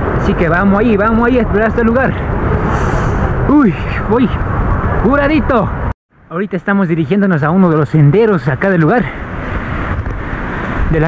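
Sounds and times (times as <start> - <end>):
wind noise on microphone: 0.0 - 5.9, 9.0 - 11.0.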